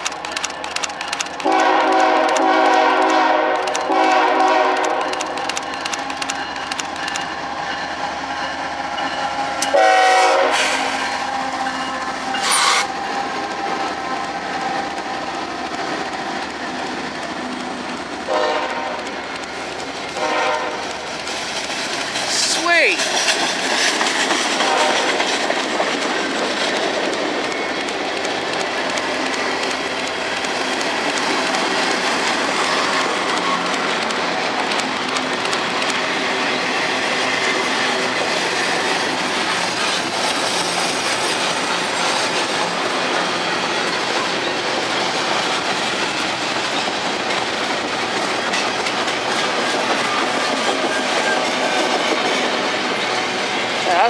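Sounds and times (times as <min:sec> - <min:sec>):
train wheels running on rails: 0:00.0 - 0:54.0.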